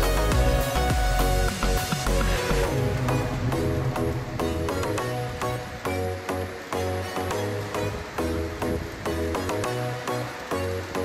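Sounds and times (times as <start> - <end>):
pulsing bass line: 0.0 - 6.6
background music with steady beat: 0.0 - 11.0.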